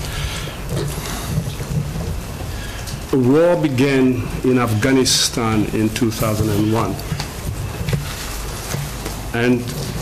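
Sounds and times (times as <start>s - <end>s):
microphone hiss and hum: 0.0s - 10.0s.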